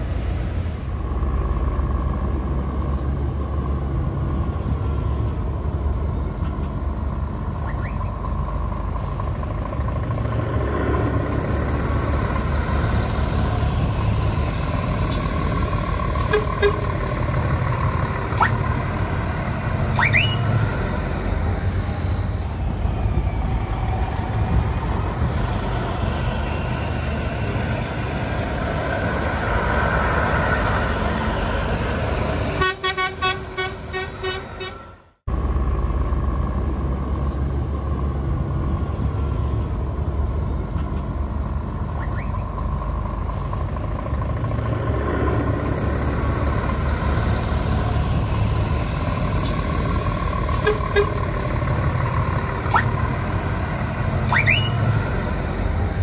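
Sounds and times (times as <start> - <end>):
truck diesel engines: 0.0 - 56.0
horn short toots: 50.6 - 51.2.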